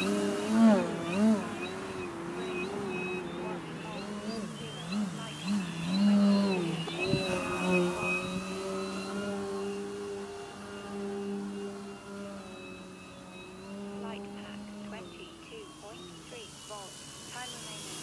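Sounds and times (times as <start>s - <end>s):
model plane propeller droning: 0.0s - 18.0s.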